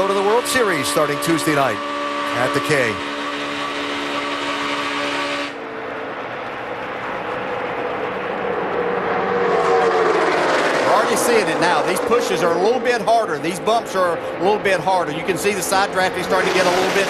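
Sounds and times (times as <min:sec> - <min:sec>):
race car engine high pitch: 0:00.0 - 0:17.0
race cars passing: 0:05.5 - 0:17.0.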